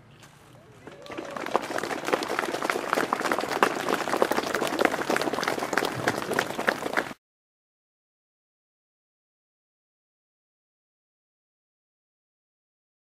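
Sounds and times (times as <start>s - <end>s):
crowd applauding: 0.8s - 7.2s.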